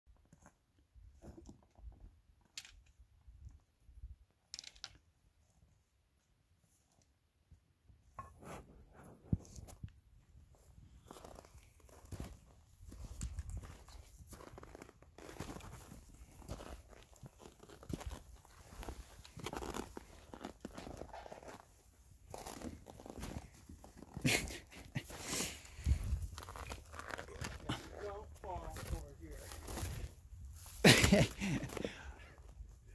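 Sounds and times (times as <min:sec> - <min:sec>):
footsteps crunching on snow: 0:10.5 - 0:32.0.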